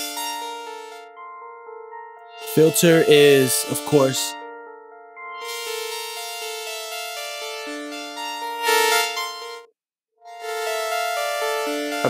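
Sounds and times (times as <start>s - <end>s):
synthesizer playing held chords: 0.0s - 9.7s, 10.3s - 12.0s.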